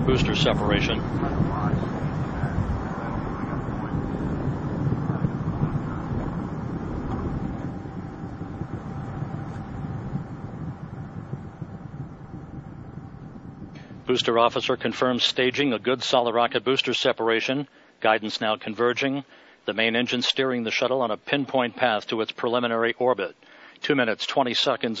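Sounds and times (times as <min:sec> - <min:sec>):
rocket engine rumble: 0:00.0 - 0:16.6.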